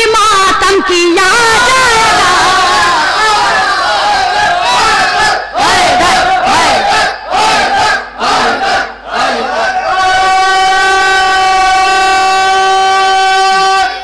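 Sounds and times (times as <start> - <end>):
amplified voices chanting: 1.6 - 14.0.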